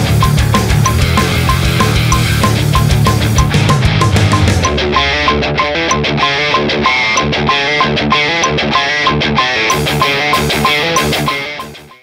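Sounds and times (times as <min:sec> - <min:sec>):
distorted electric guitar riff: 0:00.0 - 0:12.0
recorded song playback: 0:00.0 - 0:12.0.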